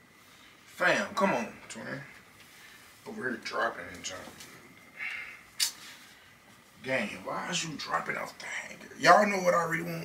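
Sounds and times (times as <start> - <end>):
man speaking: 0.8 - 2.2, 3.0 - 4.5, 6.8 - 10.0.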